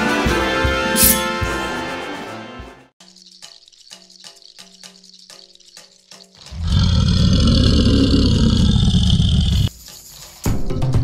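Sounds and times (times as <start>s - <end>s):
loud roar: 6.5s - 9.7s.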